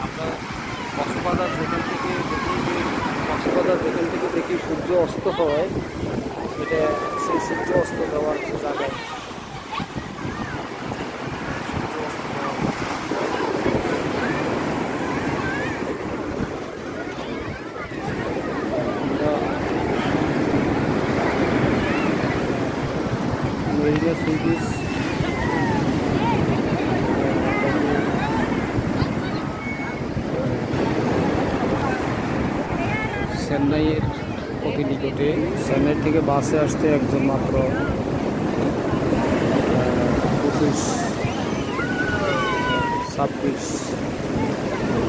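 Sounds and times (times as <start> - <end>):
surf breaking on a beach: 0.0 - 45.0
wind buffeting microphone: 0.0 - 45.0.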